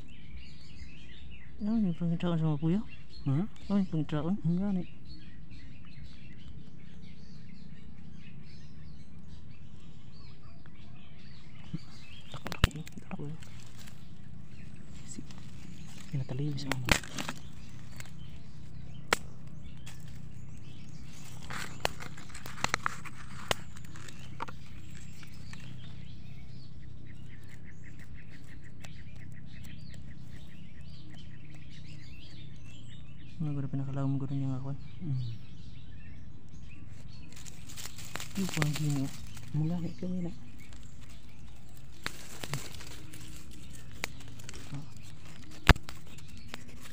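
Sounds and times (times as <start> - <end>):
small birds chirping: 0.0 - 46.9.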